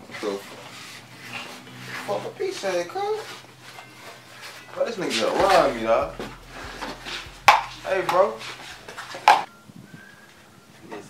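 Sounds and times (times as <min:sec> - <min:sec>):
man's voice: 0:04.8 - 0:09.0
faint low knocks: 0:05.4 - 0:09.4.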